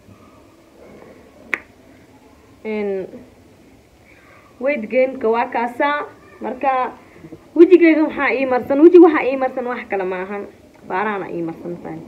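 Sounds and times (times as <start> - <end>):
woman's voice: 2.7 - 3.3, 7.6 - 12.0.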